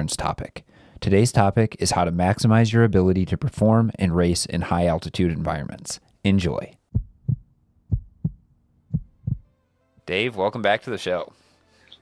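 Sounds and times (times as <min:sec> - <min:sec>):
heartbeat thumps: 0:06.9 - 0:09.5.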